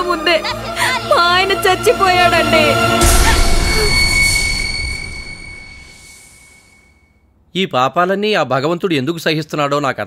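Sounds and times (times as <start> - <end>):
high steady ringing tone: 3.0 - 7.2.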